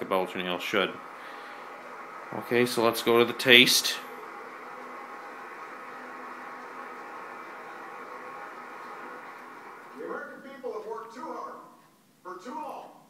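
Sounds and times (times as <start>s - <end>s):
steady hiss: 0.0s - 12.3s
faint constant hum: 0.0s - 13.0s.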